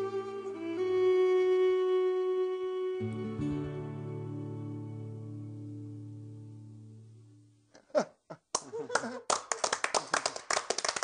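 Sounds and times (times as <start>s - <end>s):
small group clapping: 8.5s - 11.0s.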